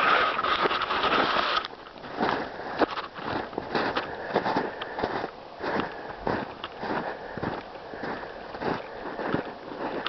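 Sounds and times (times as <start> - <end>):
footsteps crunching in snow: 0.0 - 10.0.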